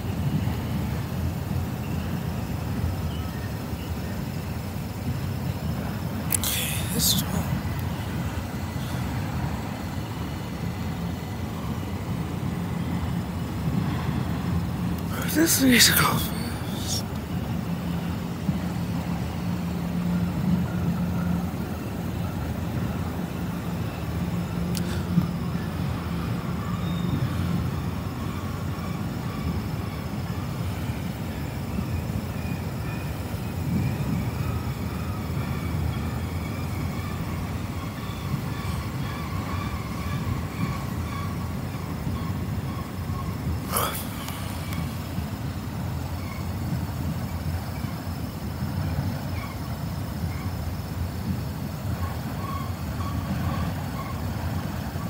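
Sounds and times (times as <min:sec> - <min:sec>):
train wheels on rails: 0:00.0 - 0:55.0.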